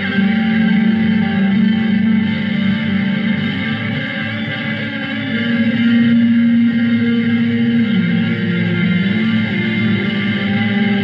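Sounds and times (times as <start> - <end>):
reverberant guitar music: 0.0 - 11.0.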